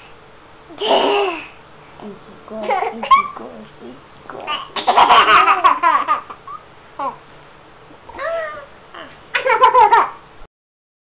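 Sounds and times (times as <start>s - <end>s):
toddler laughing: 4.5s - 7.2s, 9.3s - 10.2s.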